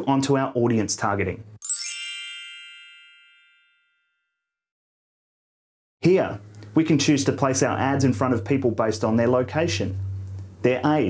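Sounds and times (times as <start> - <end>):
bright many-toned chime: 1.6 - 4.1.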